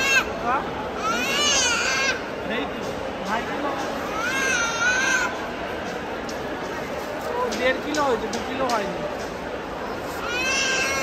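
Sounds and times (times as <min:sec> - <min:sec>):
crowd chatter: 0:00.0 - 0:11.0
baby crying: 0:10.2 - 0:11.0.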